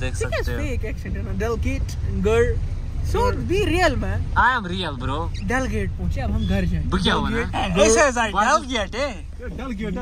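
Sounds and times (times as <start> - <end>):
car rumble from inside cabin: 0.0 - 10.0.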